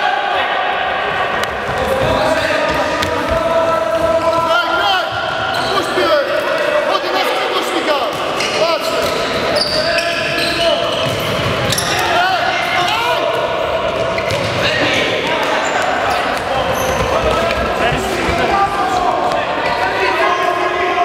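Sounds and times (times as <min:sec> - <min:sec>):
players calling out: 0:00.0 - 0:21.0
sneakers squeaking on court: 0:05.1 - 0:06.0, 0:08.1 - 0:12.2, 0:13.6 - 0:18.5.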